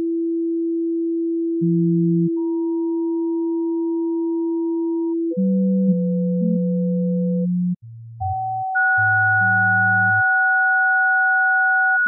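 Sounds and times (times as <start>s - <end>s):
steady low sine tone: 0.0s - 10.2s.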